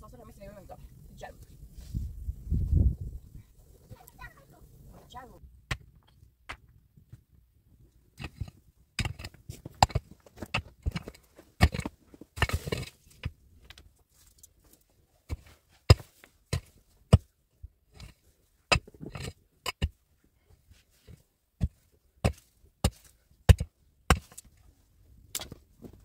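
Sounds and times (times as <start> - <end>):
stick and stones knocking: 5.6 - 7.2, 8.2 - 13.8, 15.3 - 17.3, 18.0 - 20.0, 21.6 - 24.5, 25.3 - 26.0.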